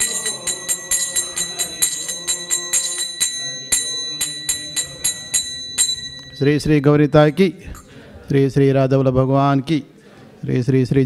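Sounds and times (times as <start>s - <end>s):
hand cymbals struck in rhythm: 0.0s - 7.9s.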